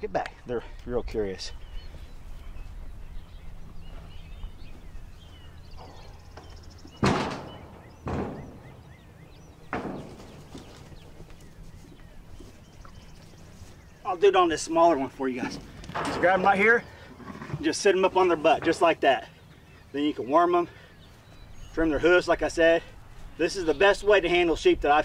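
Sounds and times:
sharp knocks: 5.8s - 9.0s, 9.6s - 10.7s.

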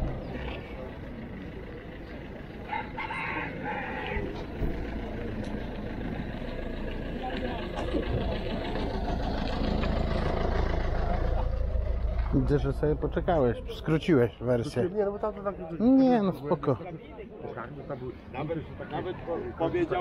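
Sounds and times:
low engine rumble: 0.0s - 20.0s
murmur of crowd voices: 0.0s - 20.0s
rooster crowing: 2.7s - 4.4s.

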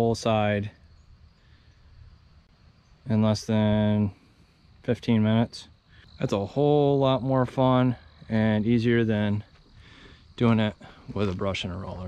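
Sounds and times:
insects chirring: 0.0s - 12.0s
low hiss and rumble: 0.0s - 12.0s.

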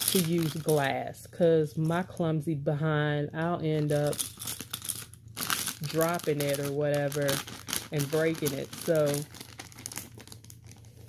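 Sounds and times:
plastic bag crinkling: 0.0s - 1.0s, 3.8s - 11.0s.

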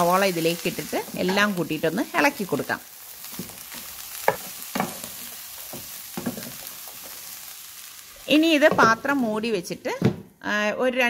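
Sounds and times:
chicken and onions sizzling in pan: 0.0s - 10.2s.

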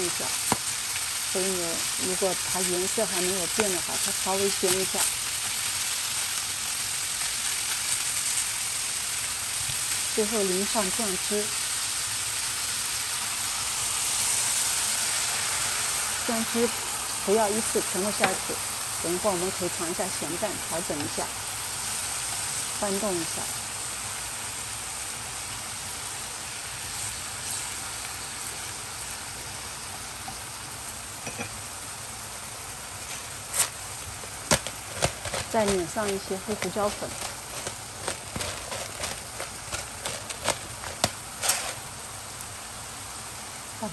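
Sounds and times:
beef sizzling in a skillet: 0.0s - 43.9s.

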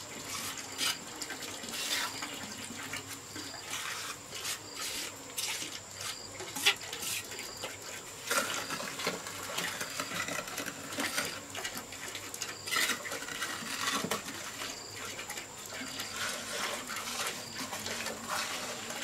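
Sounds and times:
trowel scraping wet mortar: 0.0s - 19.0s.

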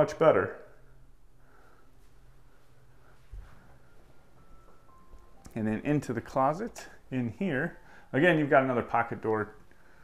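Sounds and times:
faint thin tone: 3.4s - 6.2s.

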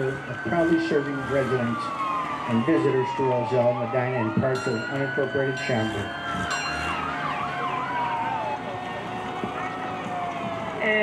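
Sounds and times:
fire engine siren winding down: 0.0s - 11.0s
wavering siren tone: 0.0s - 11.0s.

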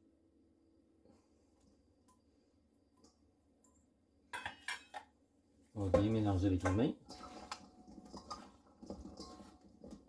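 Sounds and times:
kitchenware clinking: 4.3s - 5.2s, 5.8s - 10.0s.

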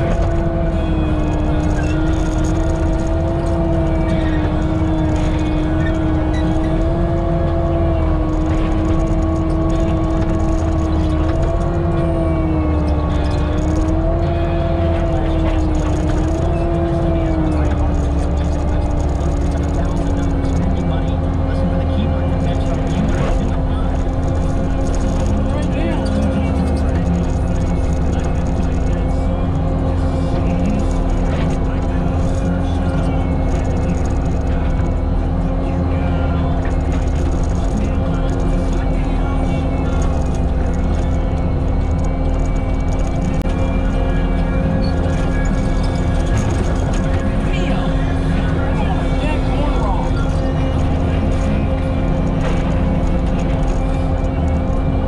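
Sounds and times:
diesel engine running: 0.0s - 55.0s
mulcher running under load: 0.0s - 55.0s
steady whine: 0.0s - 55.0s.

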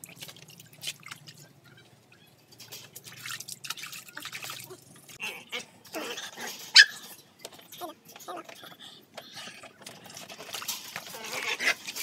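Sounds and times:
puppy yelping: 4.7s - 7.2s.

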